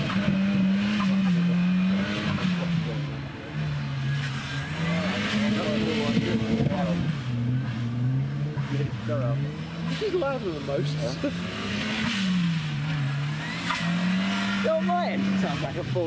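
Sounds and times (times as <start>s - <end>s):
car engine revving hard: 0.0s - 16.0s.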